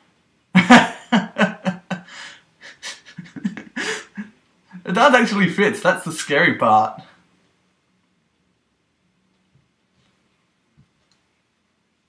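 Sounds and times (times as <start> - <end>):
man laughing breathlessly: 0.6 - 4.9.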